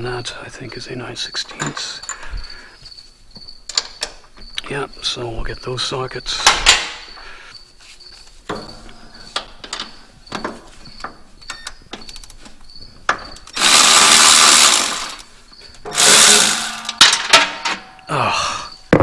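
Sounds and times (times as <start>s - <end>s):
hand tools clinking: 13.1s - 18.1s
cordless power tool bursts: 13.4s - 15.3s, 15.9s - 17.1s.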